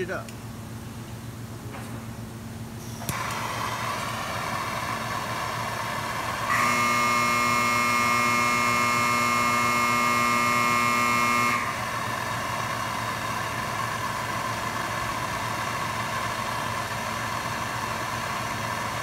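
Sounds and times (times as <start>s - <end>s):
gas torch hissing: 2.8s - 6.6s
steady buzzing tone: 4.6s - 13.8s.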